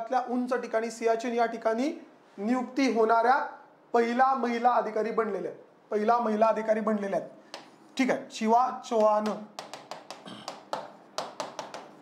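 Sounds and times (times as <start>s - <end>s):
pen tapping on touchscreen: 7.5s - 7.8s, 9.0s - 12.0s.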